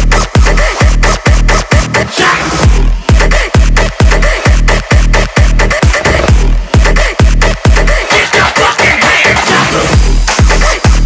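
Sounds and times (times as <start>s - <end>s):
electronic dance music: 0.0s - 11.0s
loud kick drum with sliding bass: 0.0s - 11.0s.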